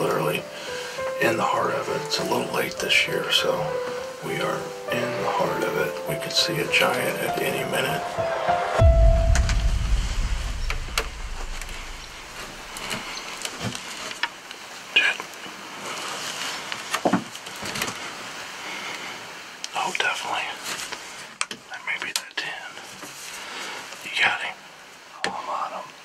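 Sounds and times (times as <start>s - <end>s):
low rumble: 8.8s - 12.9s.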